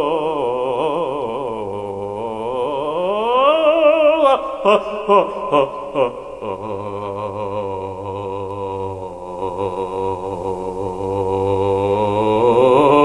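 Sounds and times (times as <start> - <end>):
man singing operatic low note: 0.0 - 13.0.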